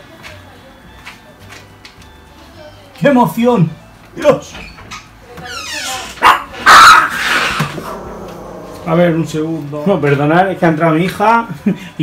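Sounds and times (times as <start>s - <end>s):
small dogs barking: 6.2s - 7.9s.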